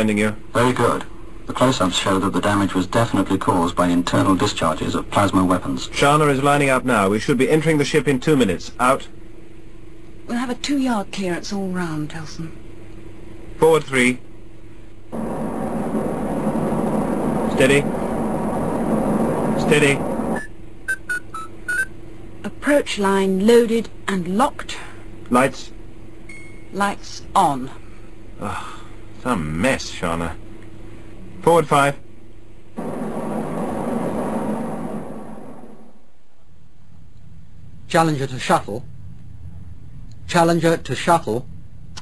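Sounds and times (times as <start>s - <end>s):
quiet electronic hum: 0.0s - 42.0s
rushing rumble with low drone: 15.1s - 20.4s, 32.8s - 36.2s
spacecraft thrusters rushing hiss: 32.8s - 35.9s.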